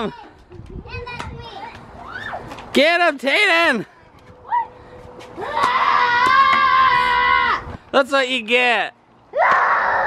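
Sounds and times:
shouts: 5.4 - 7.6, 9.3 - 10.0.

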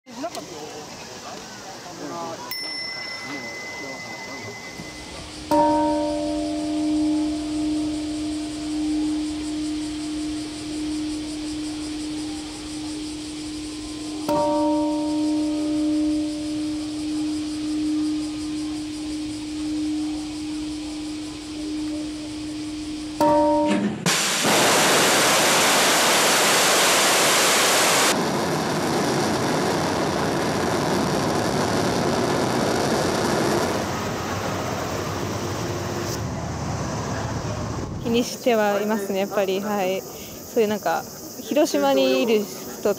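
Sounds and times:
loud steady hiss: 0.1 - 42.9
large bell ringing: 2.5 - 24.2.

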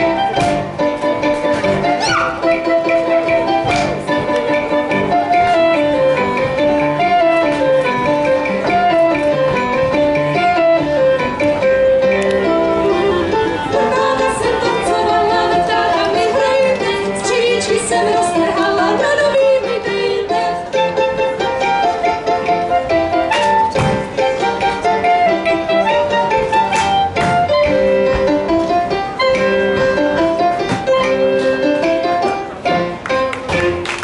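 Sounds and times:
string band playing folk dance music: 0.0 - 34.0
voices singing: 12.8 - 21.1.

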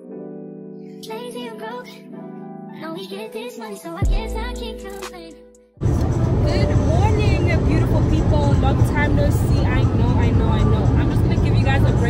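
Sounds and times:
car running rumble: 5.8 - 12.0
women's voices: 6.0 - 12.0.

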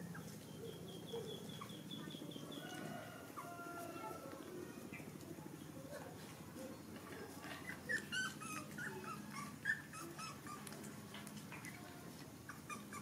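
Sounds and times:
puppies whimpering: 7.6 - 11.8, 12.4 - 13.0.

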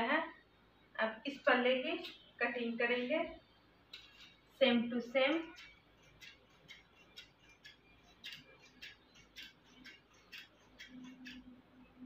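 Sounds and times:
scissors snipping cloth: 5.3 - 11.5.

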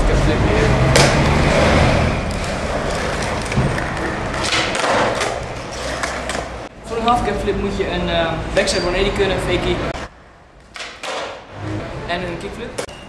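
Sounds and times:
skateboard wheels rolling on paving: 0.2 - 6.7
skateboard landing clatter: 2.4 - 6.5, 10.7 - 11.5.

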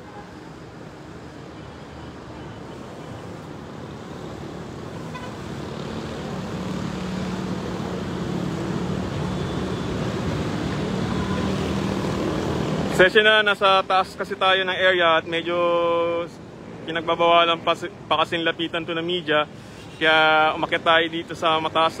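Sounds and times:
road traffic noise: 0.0 - 22.0.

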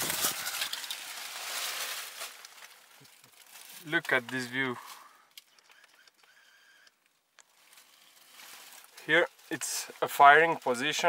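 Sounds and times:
camera handling noise: 5.3 - 7.0.

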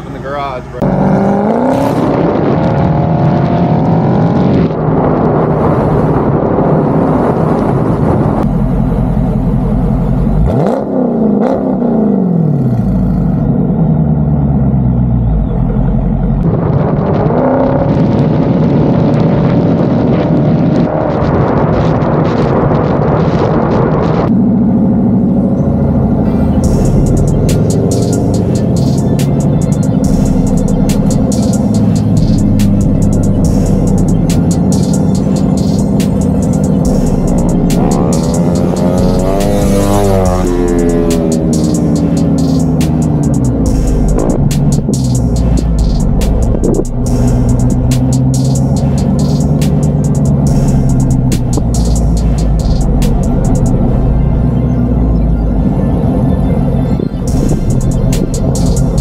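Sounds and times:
car engine exhaust while driving: 0.0 - 59.0.

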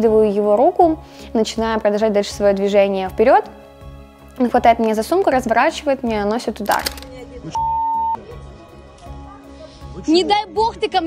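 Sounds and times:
censor bleep: 7.6 - 8.2.

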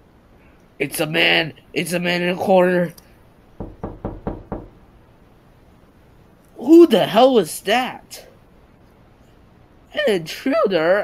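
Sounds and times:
knocking on a door: 3.6 - 4.8.

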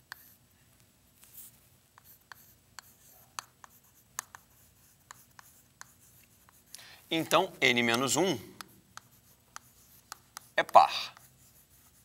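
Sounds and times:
chalk writing on chalkboard: 0.0 - 0.4, 1.2 - 12.0.

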